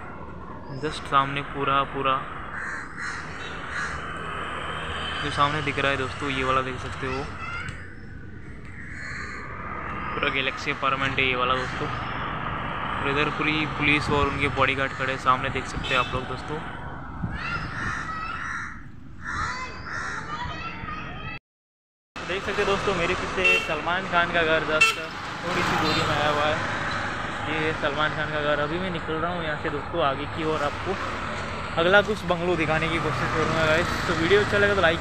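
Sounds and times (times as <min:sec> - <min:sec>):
low street noise: 0:00.0 - 0:21.4, 0:22.2 - 0:35.0
crow cawing: 0:02.4 - 0:04.4, 0:07.4 - 0:10.2, 0:17.4 - 0:20.4.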